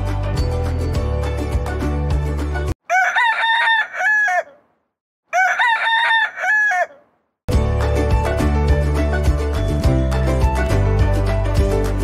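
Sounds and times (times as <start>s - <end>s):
rooster crowing: 2.8s - 4.7s, 5.3s - 7.1s.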